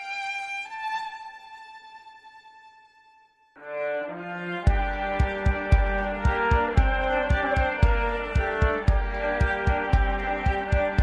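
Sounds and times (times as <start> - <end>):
solo violin melody: 0.0 - 11.0.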